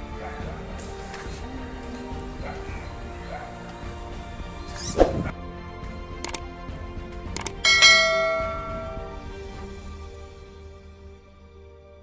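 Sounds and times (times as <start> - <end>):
mouse clicks: 6.2 - 6.4, 7.4 - 7.6
notification bell chime: 7.7 - 9.2.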